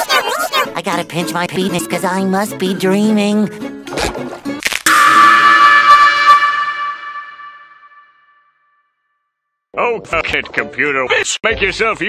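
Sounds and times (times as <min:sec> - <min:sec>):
horn-like blast: 0:04.9 - 0:08.8.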